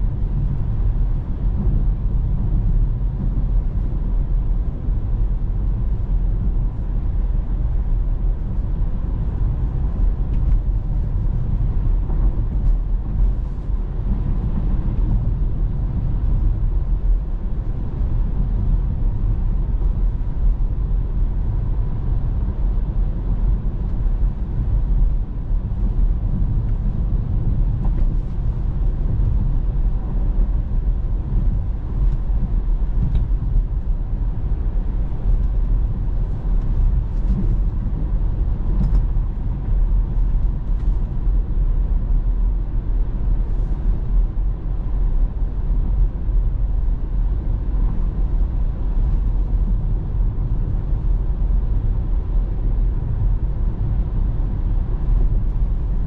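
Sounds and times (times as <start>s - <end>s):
road and tyre rumble: 0.0s - 56.0s
wind noise in car cabin: 0.0s - 56.0s.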